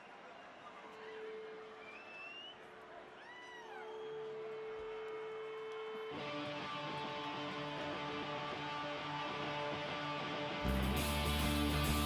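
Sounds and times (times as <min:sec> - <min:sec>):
faint crowd noise: 0:00.0 - 0:12.0.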